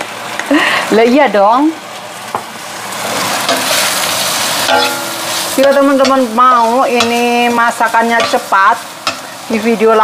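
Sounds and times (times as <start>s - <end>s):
vegetables sizzling in a wok: 0.0s - 10.0s.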